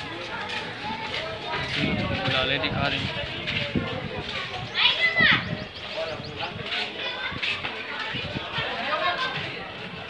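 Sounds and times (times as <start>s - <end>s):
crowd chatter with children: 0.0s - 10.0s.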